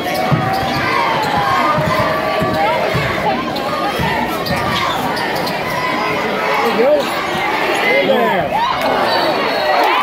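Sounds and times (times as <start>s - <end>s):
crowd chatter: 0.0s - 10.0s
people shouting: 0.0s - 10.0s
basketball dribbling on hardwood: 0.2s - 3.3s.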